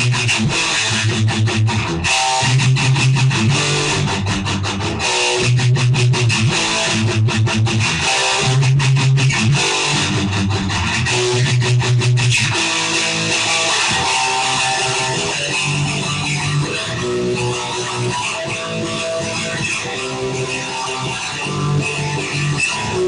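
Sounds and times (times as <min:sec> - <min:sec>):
instrumental punk rock: 0:00.0 - 0:23.0.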